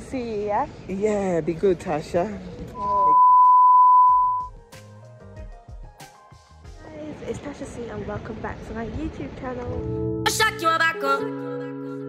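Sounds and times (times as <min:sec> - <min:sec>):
test-card beep tone: 0:02.8 - 0:04.5.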